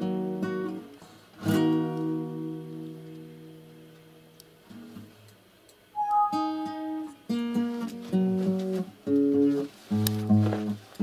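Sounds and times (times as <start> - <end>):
nylon-string guitar playing: 6.0 - 7.2.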